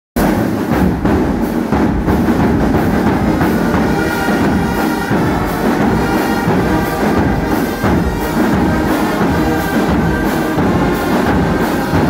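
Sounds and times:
brass band playing loudly: 0.2s - 12.0s
held brass notes: 2.2s - 12.0s.

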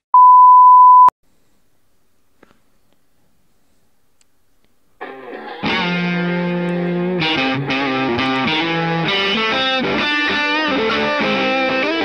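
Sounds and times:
loud steady beep tone: 0.1s - 1.1s.

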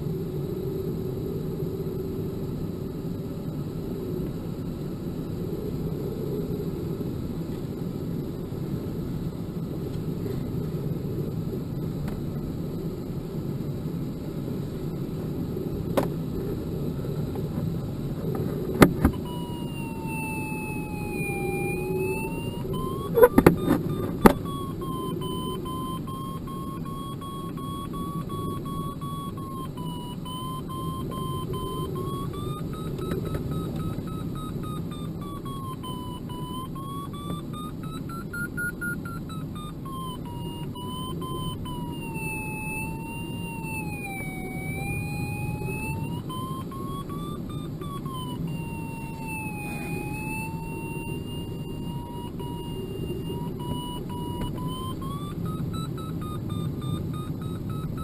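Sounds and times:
variometer tone drifting in pitch: 18.9s - 58.0s.

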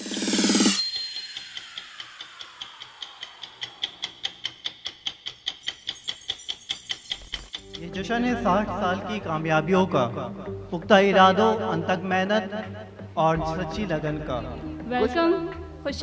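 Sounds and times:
ringing tone: 0.1s - 3.0s, 5.4s - 8.3s
chime-like tone: 0.3s - 2.2s, 5.5s - 8.4s
clock ticking: 0.8s - 15.7s.

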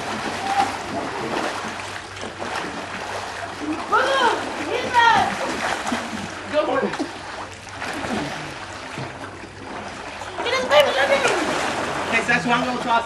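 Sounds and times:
water splashing in pool: 0.0s - 13.0s
people shouting: 0.3s - 0.9s, 3.9s - 5.4s.

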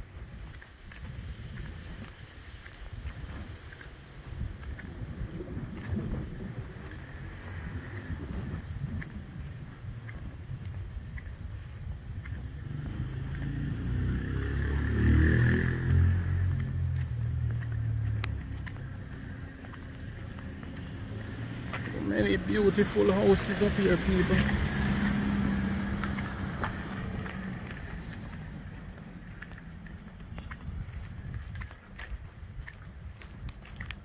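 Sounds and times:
car engine rumble: 0.0s - 34.0s
wind buffeting microphone: 0.0s - 34.0s.

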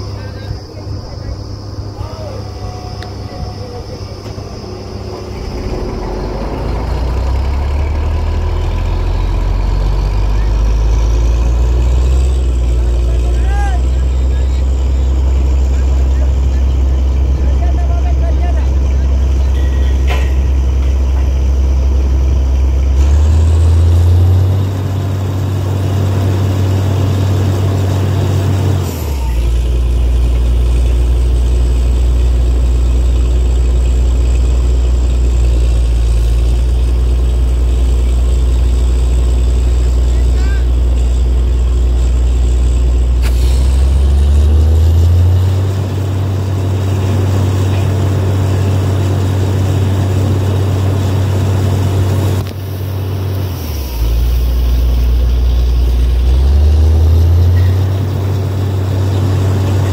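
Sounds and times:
diesel engine droning: 0.0s - 59.9s.

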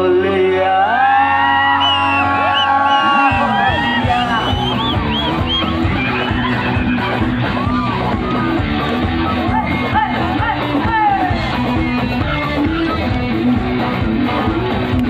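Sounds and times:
crowd yelling: 0.7s - 13.2s
live rock band playing: 2.0s - 15.0s.

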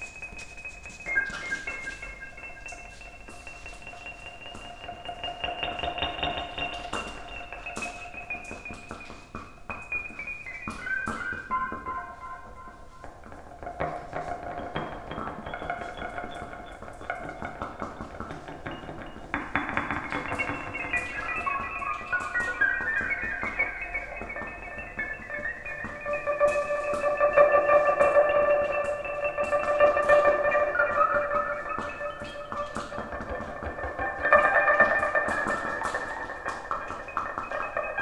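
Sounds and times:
electric guitar held tones: 9.8s - 38.0s.

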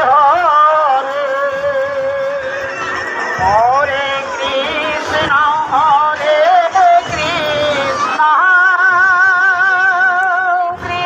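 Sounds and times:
devotional singing with vibrato: 0.0s - 11.0s
music: 0.0s - 11.0s.

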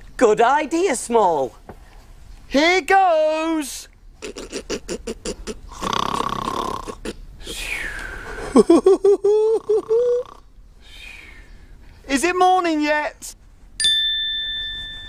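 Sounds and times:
person pretend snoring: 4.2s - 7.6s, 9.5s - 10.4s.

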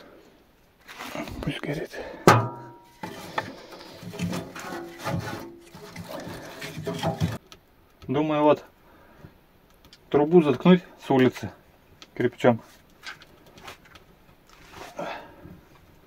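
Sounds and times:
wood knocking and scraping metal: 2.2s - 7.5s
sharp metallic clang: 2.3s - 3.0s.

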